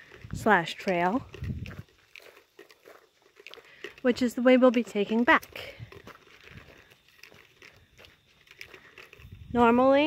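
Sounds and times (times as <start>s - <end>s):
footsteps crunching on gravel: 0.0s - 10.0s.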